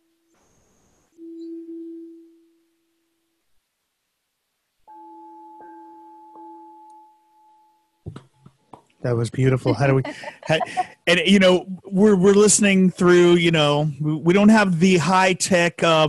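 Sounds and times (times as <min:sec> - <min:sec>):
singing bowl ringing: 0:00.5 - 0:03.2, 0:04.9 - 0:08.0.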